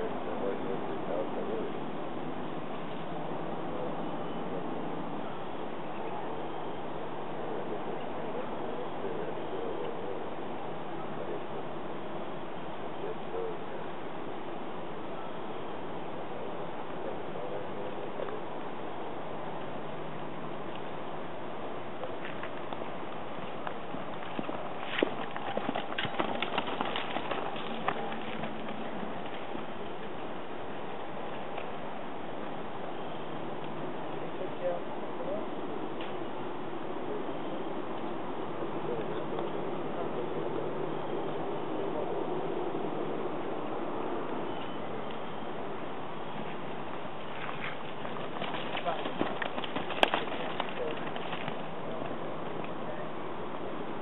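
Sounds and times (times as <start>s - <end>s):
steady outdoor hiss: 0.0s - 54.0s
horse hoofbeats: 23.4s - 30.2s, 47.2s - 51.7s.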